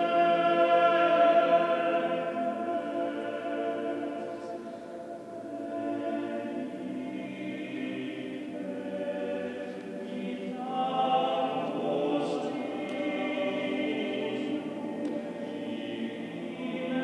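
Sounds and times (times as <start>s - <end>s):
male choir singing unaccompanied: 0.0s - 17.0s.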